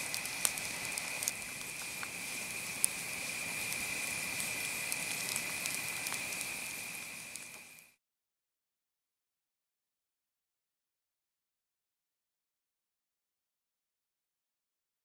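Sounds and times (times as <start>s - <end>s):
campfire crackling and popping: 0.0s - 8.0s.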